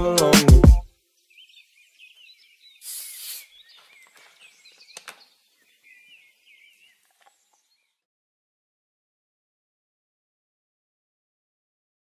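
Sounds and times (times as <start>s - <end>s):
faint bird chirps: 1.1s - 8.1s.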